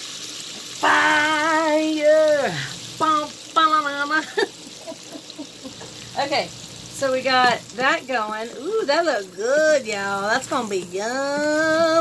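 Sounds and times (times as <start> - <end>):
garlic sizzling in butter: 0.0 - 12.0
woman singing: 8.5 - 12.0.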